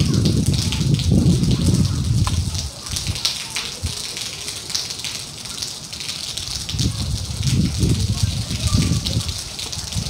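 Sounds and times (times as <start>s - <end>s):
rain and wind hiss: 0.0s - 10.0s
raindrops crackling on roofs: 0.0s - 10.0s.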